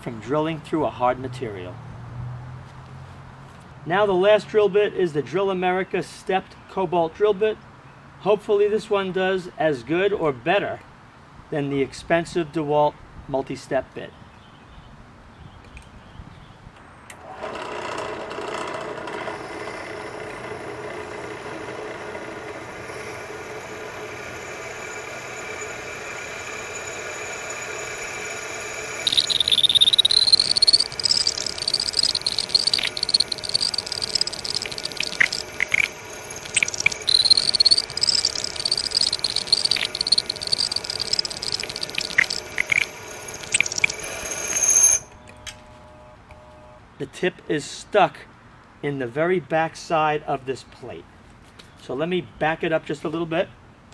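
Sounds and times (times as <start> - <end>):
drill press motor running: 17.2 - 41.6
drill bit squealing in steel: 22.8 - 45.2.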